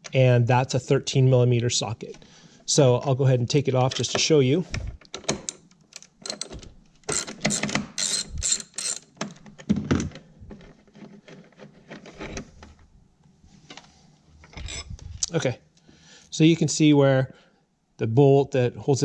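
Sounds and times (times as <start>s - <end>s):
socket ratchet clicking: 5.1s - 9.4s
metal parts clicking: 5.1s - 9.5s, 14.4s - 15.0s.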